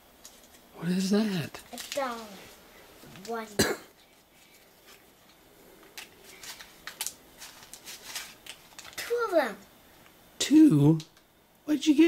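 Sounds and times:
paper bills crinkling: 1.5s - 9.2s.

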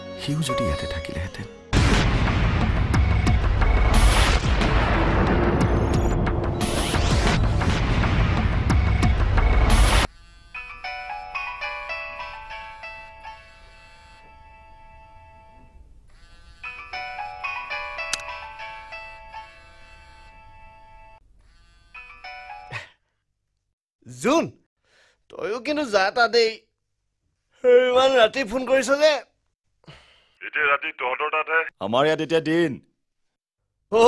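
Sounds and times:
booming hit: 1.8s - 10.0s
phone ringtone melody: 10.6s - 15.7s, 16.6s - 21.2s.

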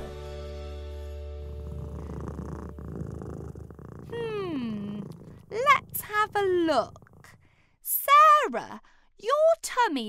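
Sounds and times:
cat purring: 1.0s - 7.7s.

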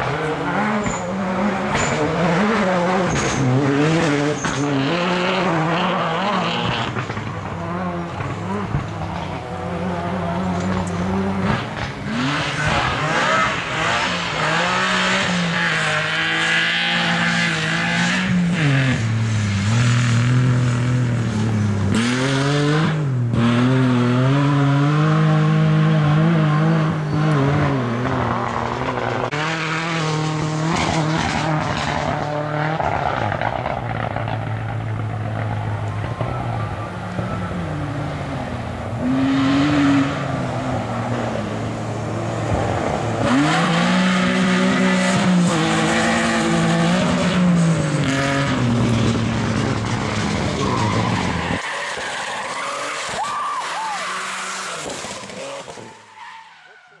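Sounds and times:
rally car engine revving: 0.0s - 57.0s
tyres skidding on dirt: 0.0s - 57.0s.

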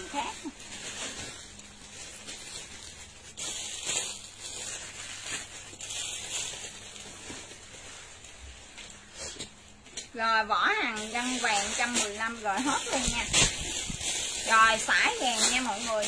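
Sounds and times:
plastic bags rustling: 0.0s - 16.0s.

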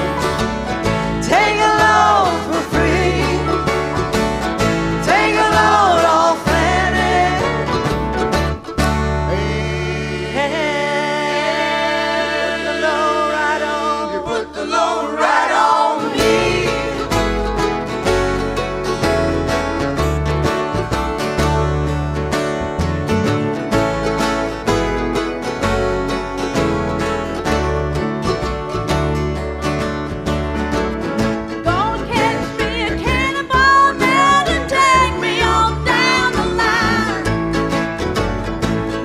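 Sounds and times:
mandolin: 0.0s - 39.0s
strummed acoustic guitars: 0.0s - 39.0s
upright bass: 0.0s - 39.0s
person singing: 0.9s - 7.9s, 9.1s - 17.3s, 31.6s - 37.4s.

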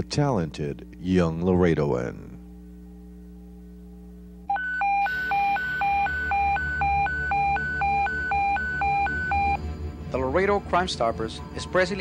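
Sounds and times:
hi-lo electronic alarm tone: 0.0s - 12.0s
low hum: 0.0s - 12.0s.

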